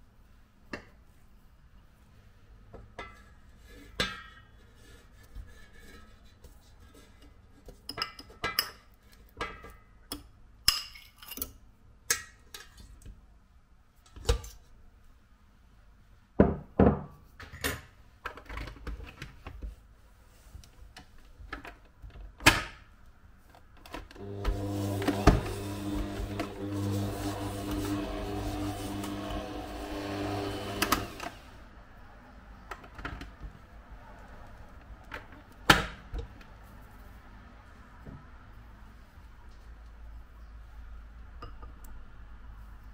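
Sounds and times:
electric stand mixer running: 24.2s - 31.6s.

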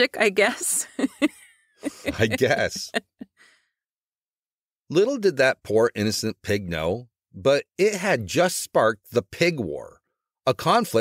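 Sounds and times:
person speaking: 0.0s - 3.2s, 4.9s - 9.9s
person laughing: 0.6s - 3.3s.

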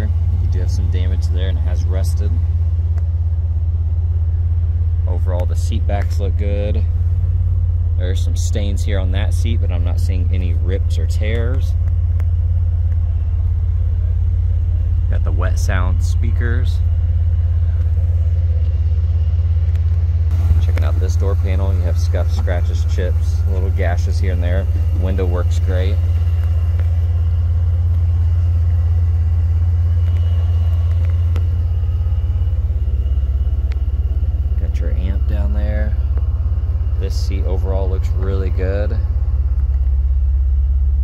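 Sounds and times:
car engine idling: 0.0s - 41.0s.

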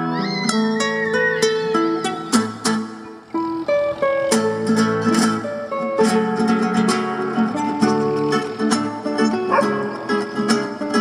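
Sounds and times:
acoustic guitar duet: 0.0s - 11.0s.

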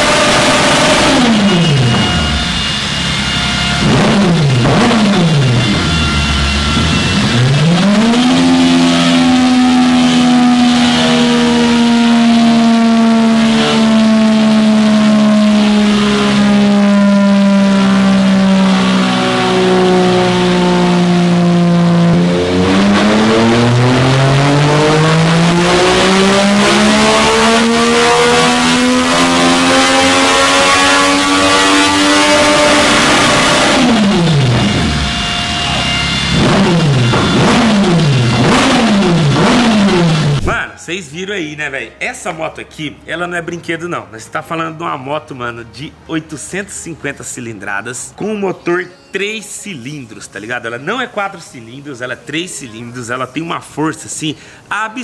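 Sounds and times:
motorcycle engine at full throttle: 0.0s - 40.6s.

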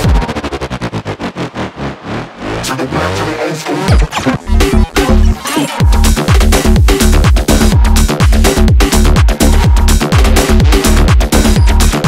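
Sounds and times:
bass house track: 0.0s - 12.0s
rapid stuttering pulse: 0.0s - 12.0s.

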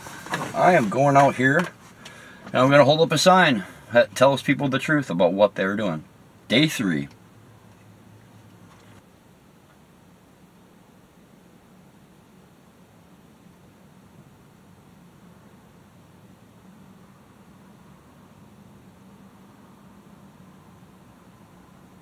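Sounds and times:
faint car cabin hum and hiss: 0.0s - 22.0s.

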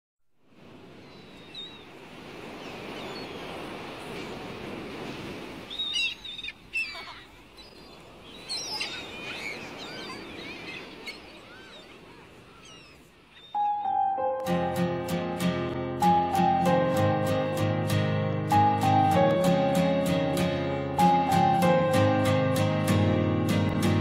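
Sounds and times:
birds chirping: 0.9s - 4.5s, 5.6s - 15.2s
acoustic guitar: 14.4s - 24.0s.

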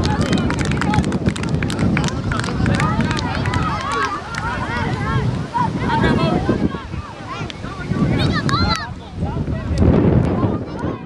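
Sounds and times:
wind rumbling on microphone: 0.0s - 11.0s
children shouting: 2.0s - 9.2s.

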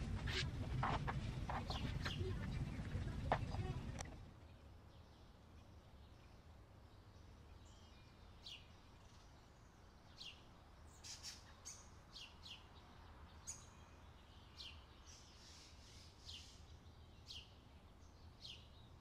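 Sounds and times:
low steady hum: 0.0s - 7.7s
faint bird chirps: 1.6s - 19.0s.

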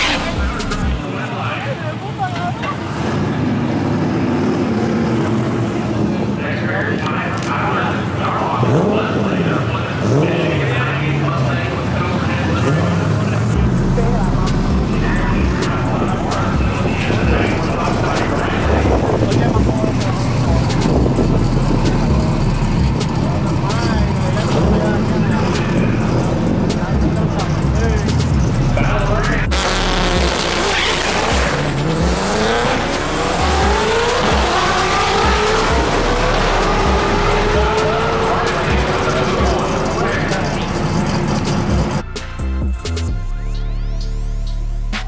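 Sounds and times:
people talking: 0.0s - 3.0s, 5.9s - 42.0s
drag car engine rumbling: 0.0s - 43.2s
crowd voices: 0.0s - 44.4s
exhaust crackle: 13.2s - 42.0s.

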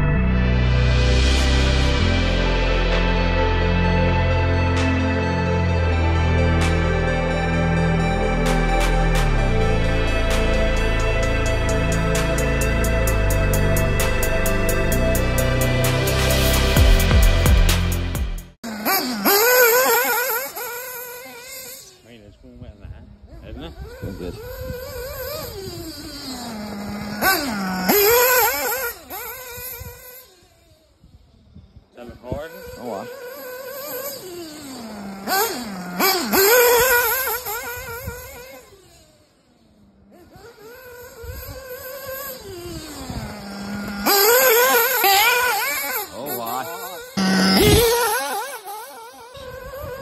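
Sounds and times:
nitro engine high revs whine: 0.0s - 50.0s.

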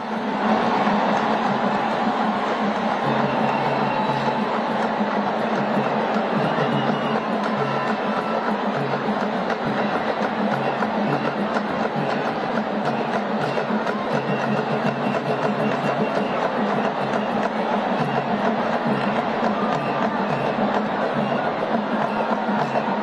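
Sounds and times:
drum-led music: 0.0s - 23.0s
stadium crowd noise: 0.0s - 23.0s.

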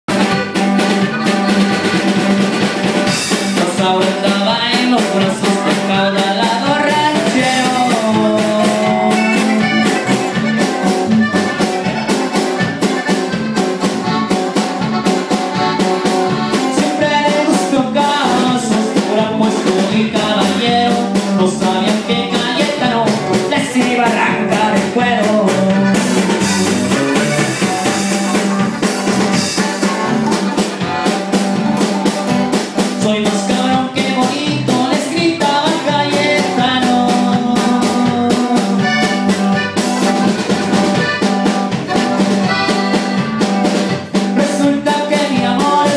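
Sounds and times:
drum kit beat: 0.0s - 45.9s
electric bass: 0.0s - 45.9s
accordion melody: 0.1s - 45.9s
bajo sexto: 0.1s - 45.9s.

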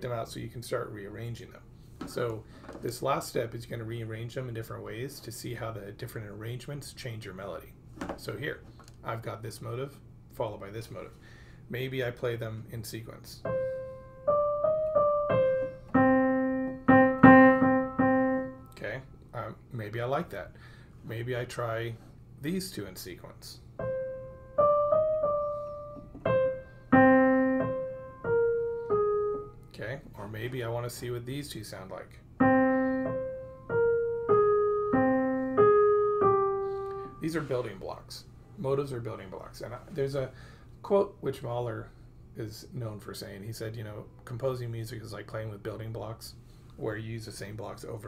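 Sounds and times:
piano melody: 13.4s - 18.8s, 23.8s - 29.6s, 32.4s - 37.4s.

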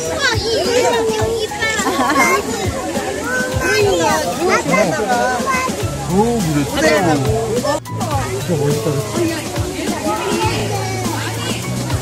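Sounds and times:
children and people chattering: 0.0s - 12.0s.

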